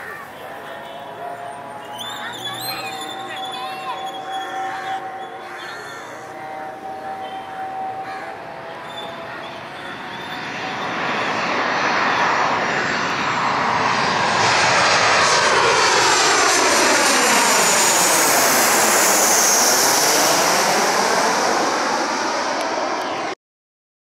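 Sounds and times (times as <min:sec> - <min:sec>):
high falling engine whine: 0:00.0 - 0:23.4
jet airliner passing overhead: 0:00.0 - 0:23.4.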